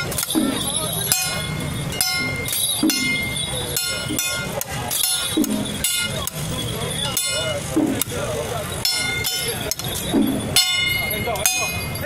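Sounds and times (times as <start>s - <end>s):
crowd chatter: 0.0s - 12.0s
metal percussion clashes: 0.0s - 12.0s.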